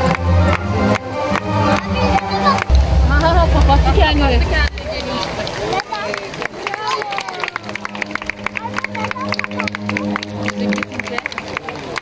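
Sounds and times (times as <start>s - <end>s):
sharp claps: 0.0s - 3.8s, 4.6s - 12.0s
held low musical tone: 0.0s - 5.7s
audience voices: 0.0s - 12.0s.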